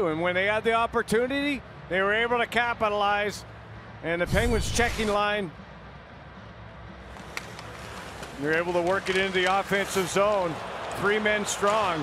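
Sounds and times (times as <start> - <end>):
crowd and rink murmur: 6.0 - 12.0.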